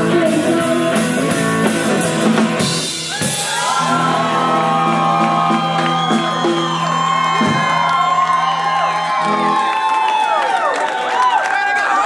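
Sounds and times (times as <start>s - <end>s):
crowd whooping and cheering: 3.0s - 12.0s.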